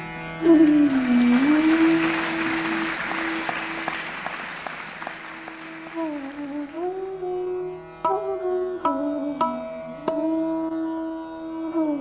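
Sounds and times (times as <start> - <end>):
audience applauding: 0.5 - 6.8.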